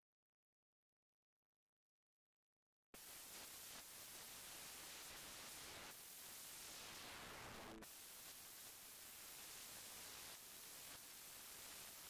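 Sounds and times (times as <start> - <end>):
faint hiss: 3.0 - 12.0.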